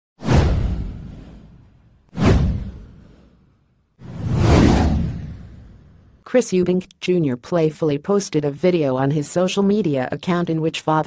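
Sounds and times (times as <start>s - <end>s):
whoosh sound effect: 2.2s - 6.1s
deep rumble: 4.0s - 6.2s.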